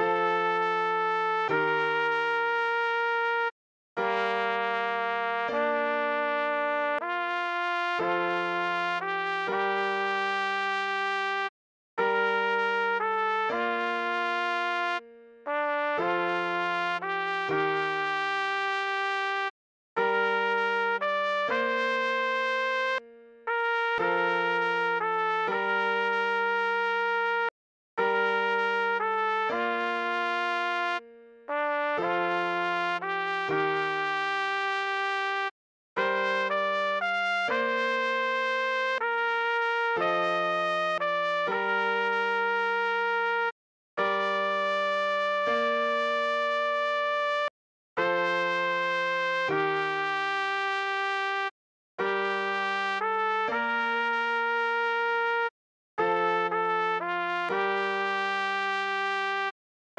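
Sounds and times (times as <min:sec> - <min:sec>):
trumpet playing slow melody: 0:00.0 - 0:59.5.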